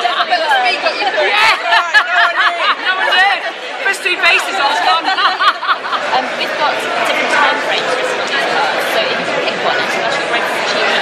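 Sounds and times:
crowd chatter: 0.0s - 11.0s
voices talking and laughing: 0.0s - 11.0s.

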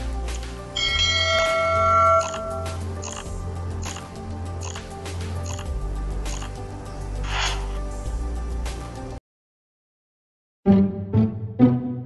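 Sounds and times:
soft background music: 0.0s - 9.2s
notification bell chime: 0.8s - 2.8s.

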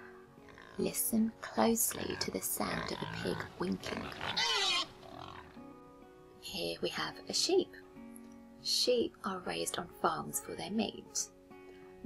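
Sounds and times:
faint background music: 0.0s - 12.0s
pig oinking: 0.5s - 1.0s, 1.7s - 5.6s.

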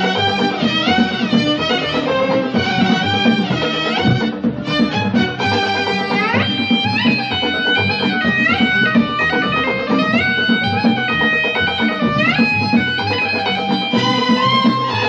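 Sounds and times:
electric guitar: 0.0s - 15.0s
pulsing bass: 0.0s - 15.0s
violins playing: 0.0s - 15.0s.

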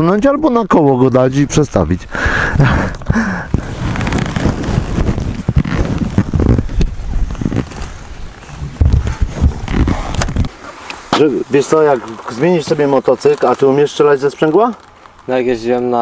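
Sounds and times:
wind buffeting microphone: 1.4s - 10.6s.

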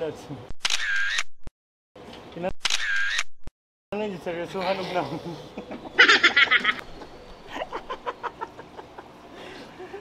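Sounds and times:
camera shutter sound effect: 0.6s - 1.5s, 2.6s - 3.5s.

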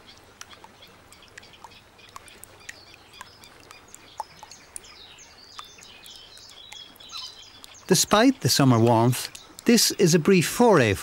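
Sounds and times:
low steady hiss: 0.0s - 11.0s
bird chirps: 0.1s - 8.2s.

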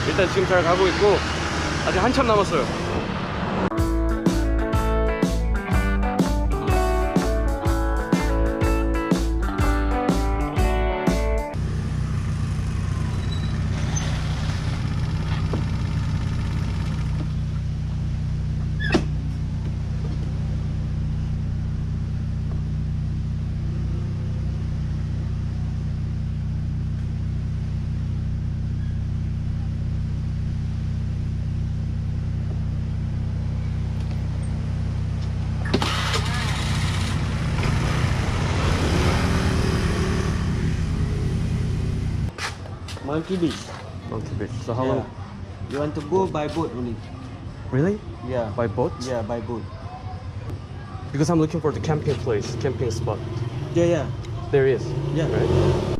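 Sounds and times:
road noise: 0.0s - 55.9s
motor scooter engine running: 11.6s - 42.3s.

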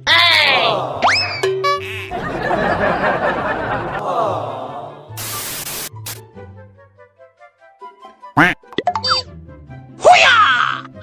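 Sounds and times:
tv static hiss: 5.2s - 5.9s.

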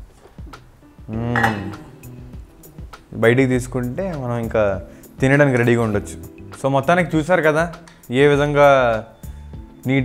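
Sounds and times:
light metallic clinks of pot: 1.4s - 2.2s.

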